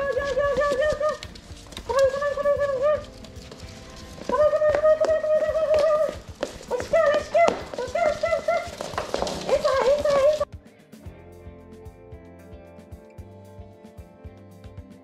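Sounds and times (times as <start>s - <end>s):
high-pitched sing-song calling voice: 0.0s - 8.9s
puppies' claws clicking on hardwood floor: 0.0s - 10.5s.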